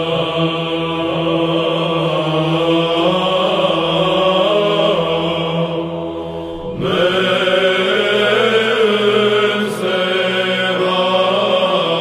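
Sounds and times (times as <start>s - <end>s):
low vocal drone: 0.0s - 12.0s
male choir chanting: 0.0s - 12.0s.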